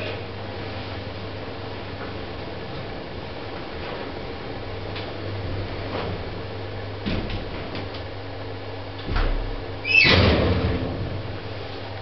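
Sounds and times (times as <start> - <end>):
lift doors rattling open: 8.9 - 11.8
lift door deep clunk: 9.0 - 11.6
door high squeal: 9.8 - 10.4.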